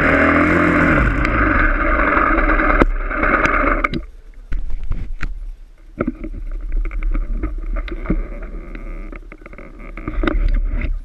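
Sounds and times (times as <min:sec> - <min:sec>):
motorcycle engine low revs: 0:00.0 - 0:02.9.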